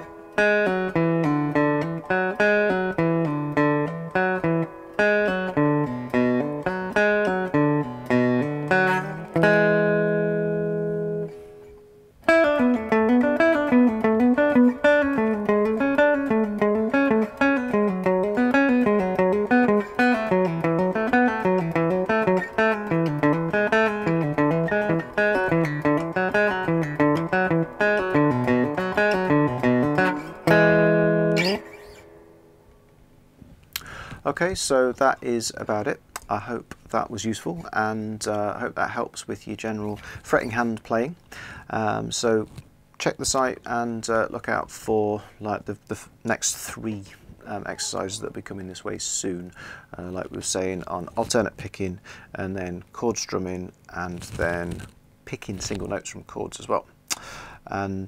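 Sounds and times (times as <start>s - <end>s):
guitar chord ringing out: 0.0s - 32.9s
cigar box guitar fretted notes: 0.0s - 44.7s, 45.4s - 58.0s.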